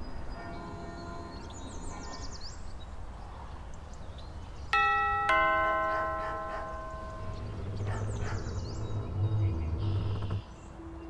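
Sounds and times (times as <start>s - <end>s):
doorbell ding-dong chime: 4.8s - 7.8s.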